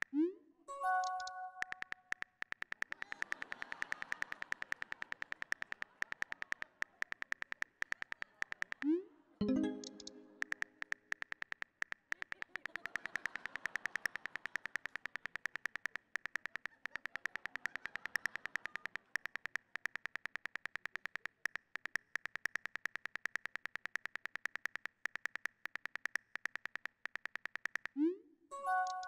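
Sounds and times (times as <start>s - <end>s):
smartphone keyboard clicks: 0.9s - 28.0s.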